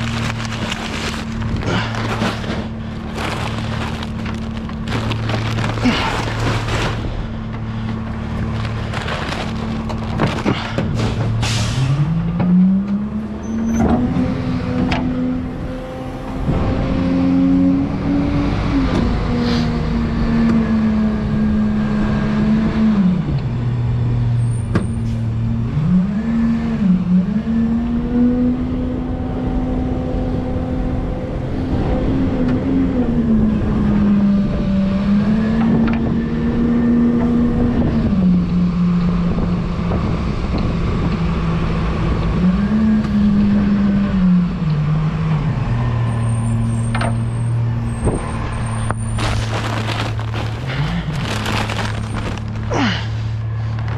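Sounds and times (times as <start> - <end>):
garbage truck engine running: 0.0 - 14.2, 46.2 - 53.9
road and wind noise: 0.0 - 53.9.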